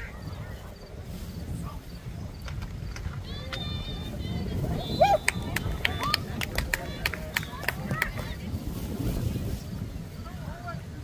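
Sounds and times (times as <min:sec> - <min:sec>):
wind rumble on microphone: 0:00.0 - 0:11.0
football pads and helmets clacking: 0:02.4 - 0:04.0, 0:05.2 - 0:08.4.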